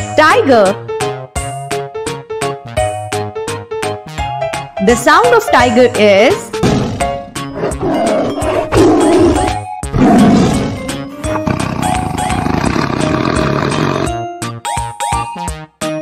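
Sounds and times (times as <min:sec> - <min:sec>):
cheerful background music: 0:00.0 - 0:16.0
tiger roaring: 0:06.8 - 0:14.1.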